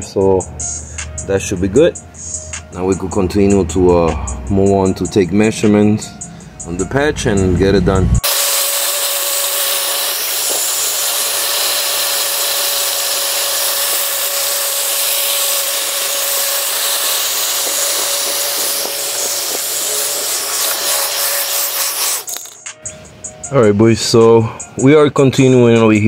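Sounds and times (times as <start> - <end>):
electric blower running: 8.2 - 22.6.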